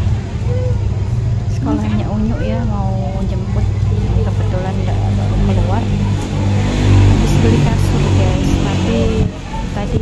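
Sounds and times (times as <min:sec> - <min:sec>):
low engine hum: 0:00.0 - 0:10.0
woman talking softly: 0:01.5 - 0:06.0.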